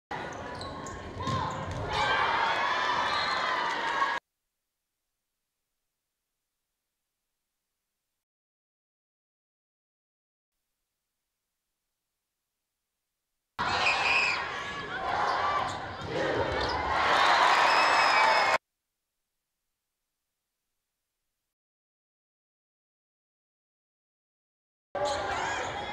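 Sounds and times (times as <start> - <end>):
gym crowd noise: 13.6 - 18.6.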